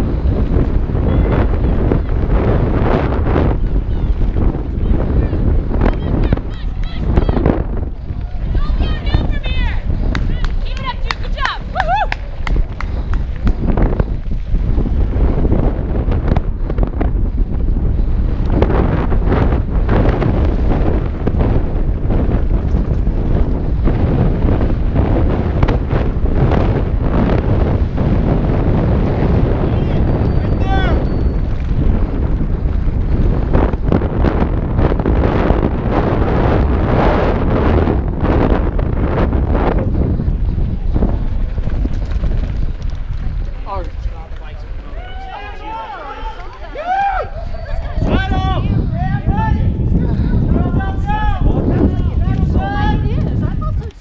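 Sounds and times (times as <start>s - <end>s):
bike rattling over rough ground: 0.0s - 48.2s, 49.8s - 54.0s
wind rushing over microphone: 0.0s - 54.0s.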